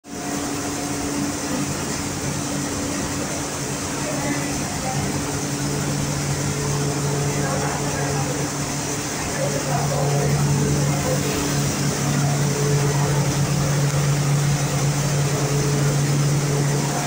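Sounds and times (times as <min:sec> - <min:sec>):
machinery hum and hiss: 0:00.1 - 0:17.0.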